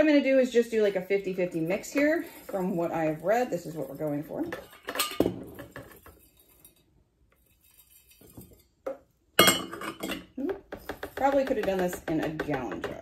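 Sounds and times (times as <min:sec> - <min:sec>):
metal clinking against glass jars: 0:04.6 - 0:05.3.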